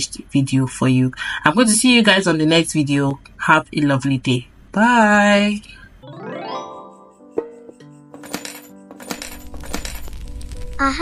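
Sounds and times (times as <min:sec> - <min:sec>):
soft sustained music tones: 0:06.0 - 0:08.2.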